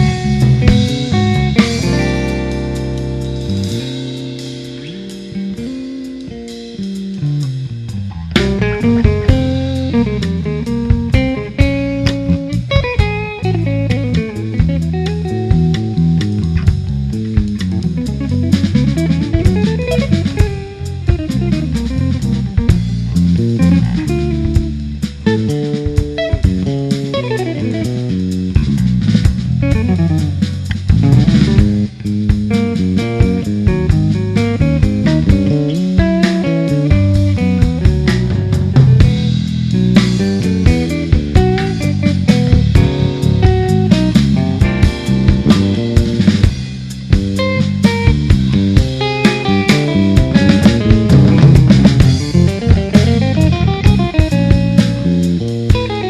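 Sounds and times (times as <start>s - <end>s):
drum kit: 0.0s - 56.0s
electric bass: 0.0s - 56.0s
electric guitar runs: 48.8s - 55.1s.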